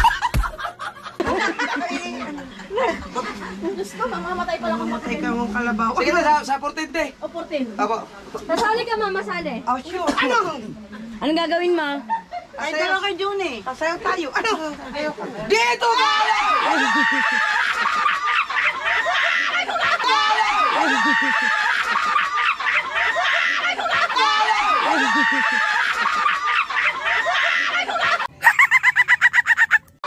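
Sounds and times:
people laughing and shrieking: 0:15.7 - 0:29.9
high clucking calls: 0:28.4 - 0:30.0.

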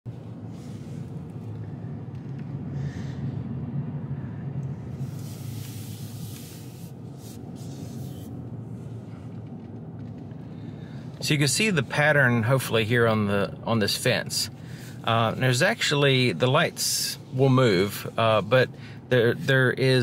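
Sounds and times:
car cabin engine and road hum: 0:00.1 - 0:20.0
road hiss: 0:04.5 - 0:09.1, 0:14.0 - 0:20.0.

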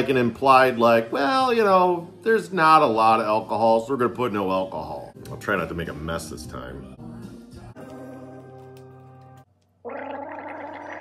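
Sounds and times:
man gargling: 0:09.9 - 0:11.0.

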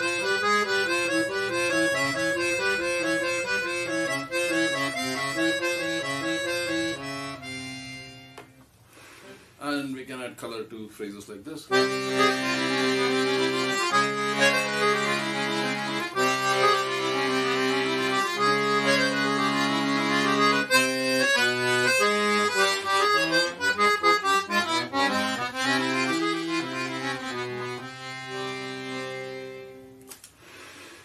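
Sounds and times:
accordion playing: 0:00.0 - 0:08.7, 0:11.7 - 0:30.1.

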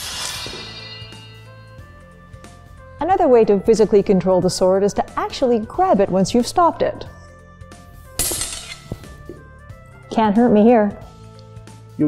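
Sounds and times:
background music: 0:00.0 - 0:12.0
sword blades clashing: 0:08.2 - 0:09.0.

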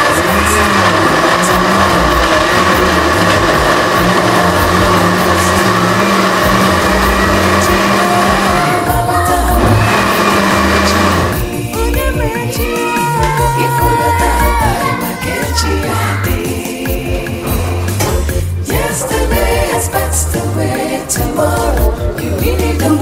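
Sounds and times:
blender motor running: 0:00.0 - 0:16.6.

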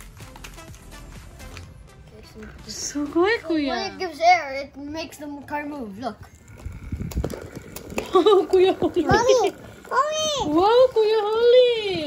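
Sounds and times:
small electric motor whirring: 0:06.2 - 0:12.0.

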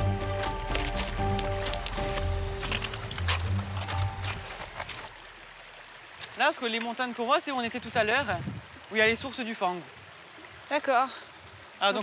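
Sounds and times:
background music: 0:00.0 - 0:05.1
shallow river flowing over stones: 0:00.0 - 0:12.0.

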